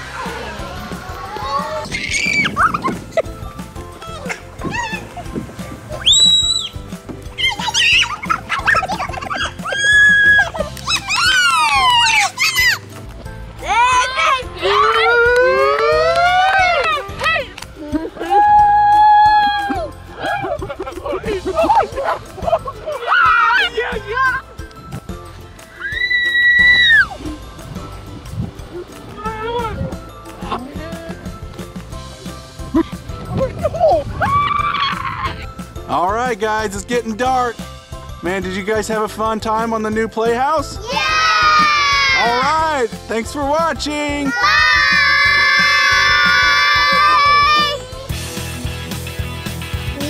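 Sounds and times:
young children shrieking: 0.0s - 2.9s, 4.2s - 5.2s, 6.0s - 6.8s, 7.4s - 12.8s, 18.2s - 20.5s, 22.9s - 24.4s, 25.7s - 27.2s, 33.8s - 35.5s, 40.9s - 42.5s, 44.2s - 48.1s
background music: 0.0s - 50.0s.

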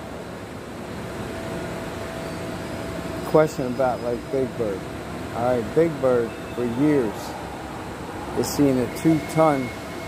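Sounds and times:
steady background hum: 0.0s - 10.0s
faint high steady tone: 2.2s - 4.8s, 5.4s - 7.4s, 8.4s - 10.0s.

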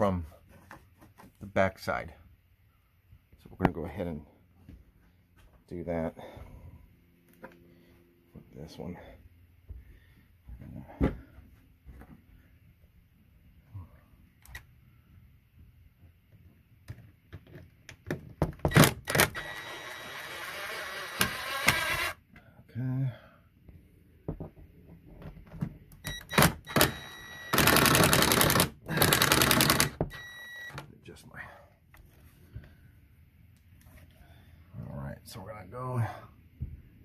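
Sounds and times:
cordless drill running: 18.7s - 22.2s, 26.2s - 30.6s.

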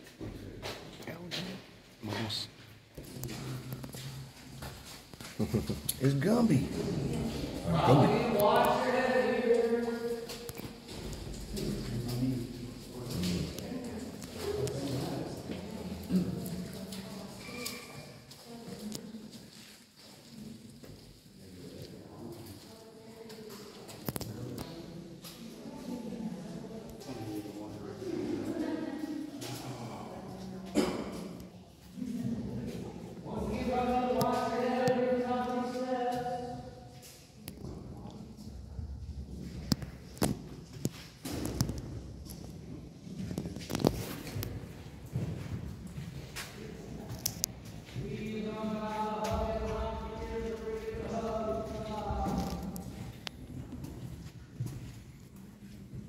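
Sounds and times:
footsteps on cave path: 0.0s - 24.2s, 35.6s - 56.0s.

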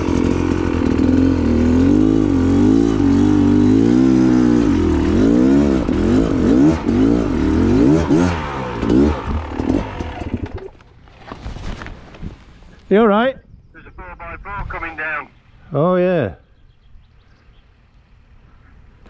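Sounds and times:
motorbike engine revving: 0.0s - 10.8s.

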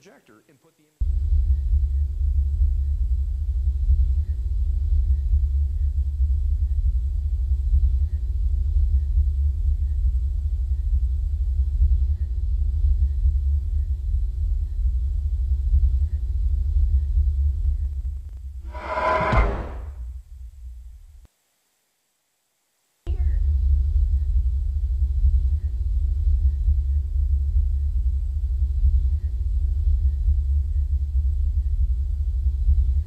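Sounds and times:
deep low rumble drone: 1.0s - 20.0s, 23.1s - 33.0s.

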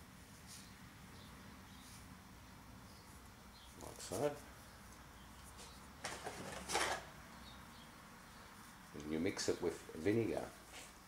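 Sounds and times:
steel wool scraping tableware: 6.1s - 7.0s.

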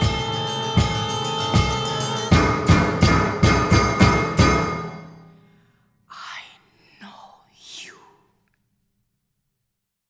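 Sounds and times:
woman whispering: 6.1s - 8.5s.

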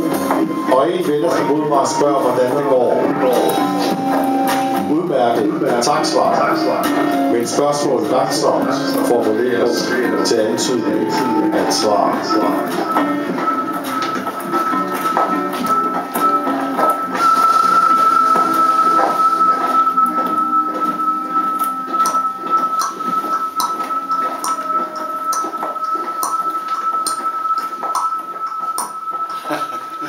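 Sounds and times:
high tone held steady: 0.0s - 30.0s
instrumental music: 0.0s - 30.0s.

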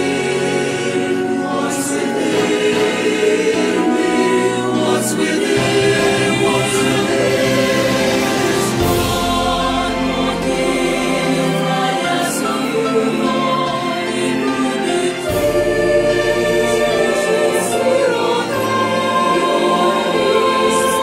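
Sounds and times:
slow choral song: 0.0s - 21.0s.

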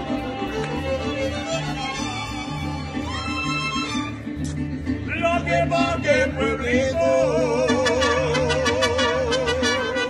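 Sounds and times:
guitars strumming: 0.0s - 10.0s
man singing: 5.1s - 10.0s.

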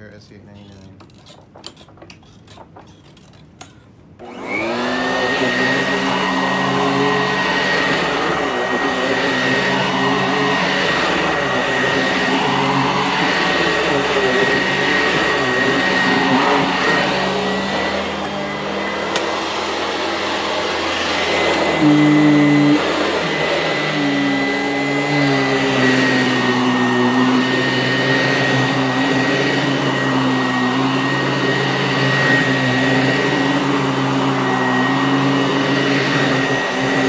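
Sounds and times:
vacuum cleaner motor whining: 4.2s - 37.0s.

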